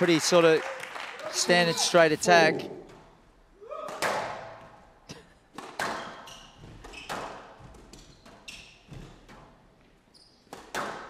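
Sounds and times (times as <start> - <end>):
squash ball cracks on racket and walls: 3.8 - 4.6, 5.6 - 6.2, 10.5 - 11.0
court shoes squeaking: 3.8 - 11.0.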